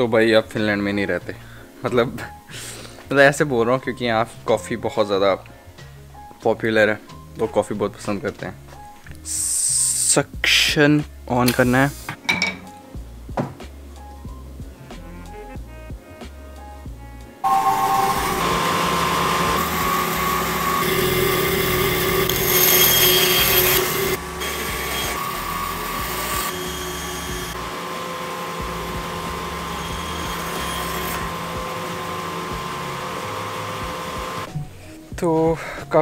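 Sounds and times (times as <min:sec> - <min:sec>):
background music: 0:00.0 - 0:36.0
band saw cutting wood: 0:17.4 - 0:34.5
dust extraction suction: 0:17.4 - 0:34.5.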